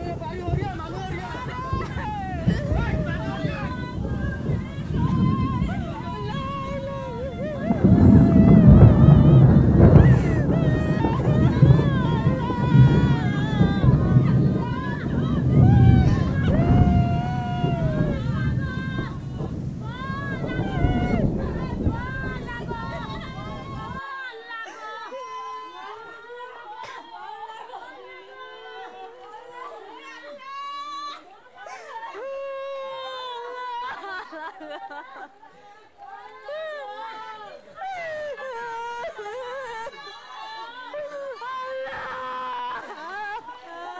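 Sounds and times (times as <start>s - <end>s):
wind buffeting microphone: 0.0s - 24.0s
person singing: 0.0s - 30.3s.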